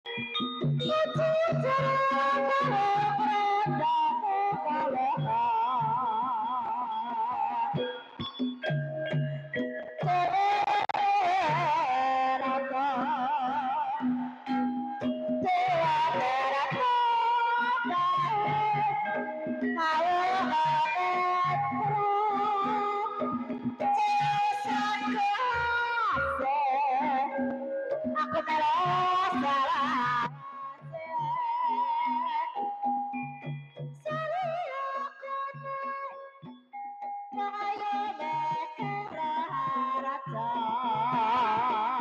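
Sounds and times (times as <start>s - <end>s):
high wavering melody: 0.1s - 42.0s.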